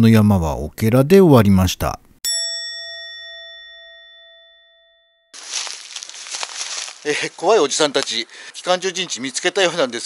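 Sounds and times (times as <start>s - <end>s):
bell-like chime: 2.2s - 5.4s
rustling crackling noise: 5.4s - 9.4s.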